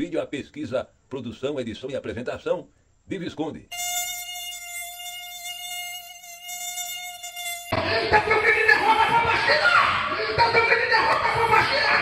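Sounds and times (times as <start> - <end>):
mosquito buzzing: 3.7 - 7.8.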